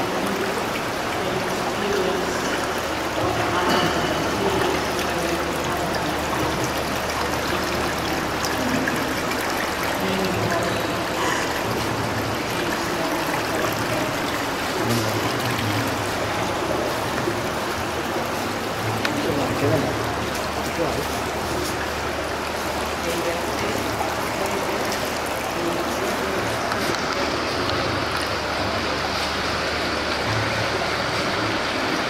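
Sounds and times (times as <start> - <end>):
water running and trickling: 0.0 - 32.0.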